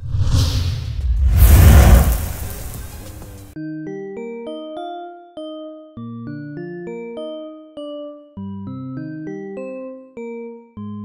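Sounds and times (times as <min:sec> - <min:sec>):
whoosh with deep rumble: 0:00.0 - 0:03.6.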